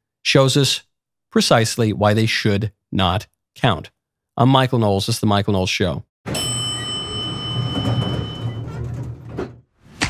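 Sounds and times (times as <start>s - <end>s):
elevator chime: 6.3s - 9.5s
elevator doors sliding: 6.3s - 10.0s.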